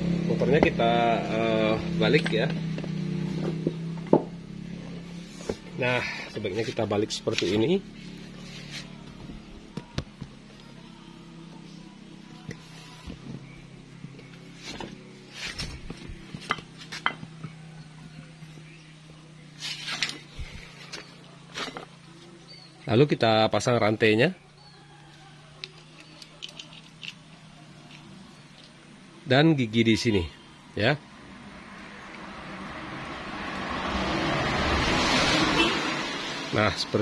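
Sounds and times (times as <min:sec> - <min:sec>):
passing motor vehicle: 0:00.0 - 0:23.0, 0:24.4 - 0:37.0
metal engine parts clinking: 0:02.0 - 0:02.9, 0:14.8 - 0:17.6, 0:25.7 - 0:28.8.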